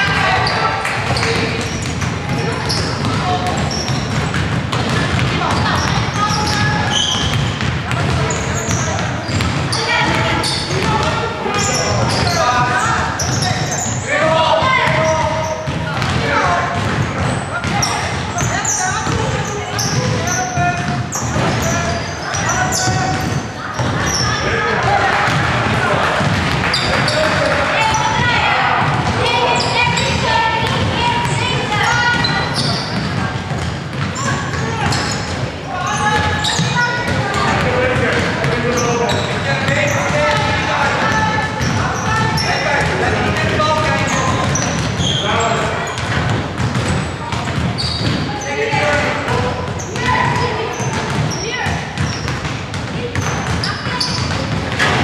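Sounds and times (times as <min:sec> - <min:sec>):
basketball bouncing on wooden floor: 0:00.0 - 0:13.8, 0:14.6 - 0:24.4, 0:25.1 - 0:35.3, 0:36.0 - 0:55.0
voices calling out: 0:00.0 - 0:55.0.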